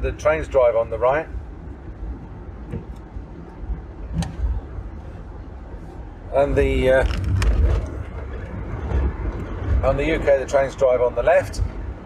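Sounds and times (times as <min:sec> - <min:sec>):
engine and tyre rumble: 0:00.0 - 0:12.0.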